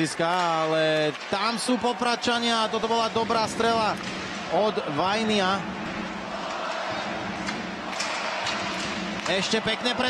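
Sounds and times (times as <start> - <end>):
crowd noise: 0.0 - 10.0
hockey stick clicks: 7.4 - 9.5.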